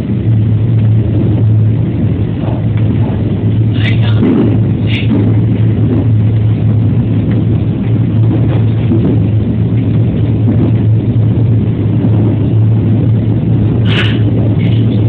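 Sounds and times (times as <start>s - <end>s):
electric train rumbling: 0.0s - 15.0s.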